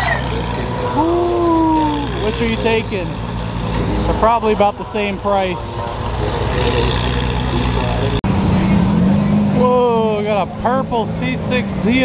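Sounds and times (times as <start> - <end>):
car engines running: 0.0 - 12.0
crowd chatter: 0.0 - 12.0.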